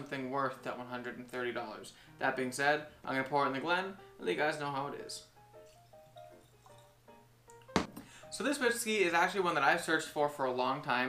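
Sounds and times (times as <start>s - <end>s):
glassware set down on wood: 7.7s - 8.0s
sharp knock: 7.8s - 8.0s.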